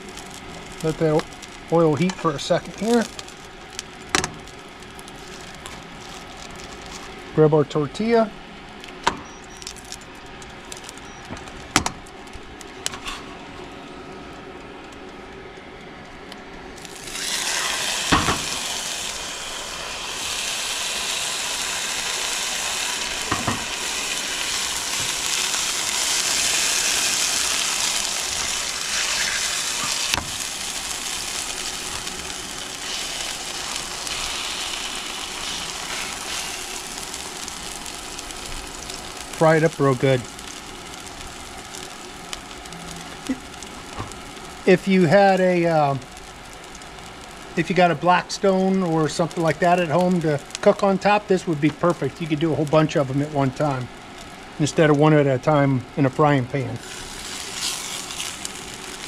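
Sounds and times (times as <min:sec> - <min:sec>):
tortilla sizzling in hot oil: 0:00.0 - 0:07.4, 0:08.0 - 0:54.9, 0:55.9 - 0:59.0.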